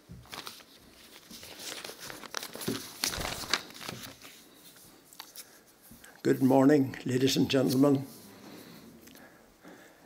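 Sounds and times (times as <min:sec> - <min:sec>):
paper rustling and crinkling: 0:00.0 - 0:05.9.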